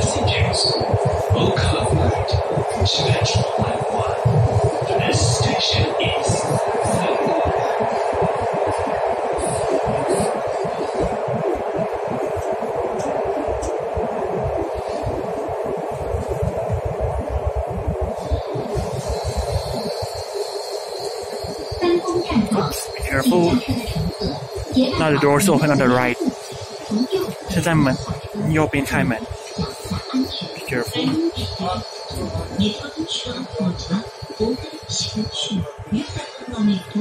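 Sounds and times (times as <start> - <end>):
steady high whine: 0.0 - 37.0
train rumble and hiss: 0.0 - 37.0
person speaking: 23.0 - 23.8, 24.9 - 26.2, 27.2 - 29.2, 30.6 - 31.3.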